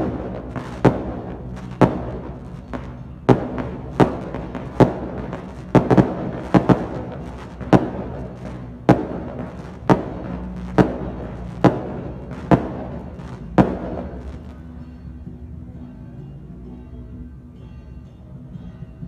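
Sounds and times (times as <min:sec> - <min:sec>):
fireworks bursting: 0:00.0 - 0:14.8.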